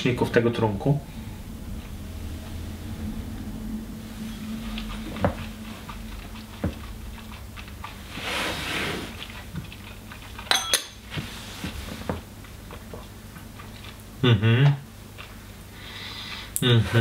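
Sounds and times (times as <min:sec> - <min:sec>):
glass clinking against table and bottles: 0:10.5 - 0:11.0.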